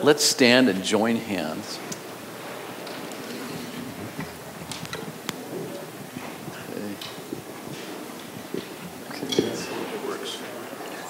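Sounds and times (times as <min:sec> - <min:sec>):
rustling clothes: 0:01.3 - 0:11.0
shuffling feet: 0:01.4 - 0:11.0.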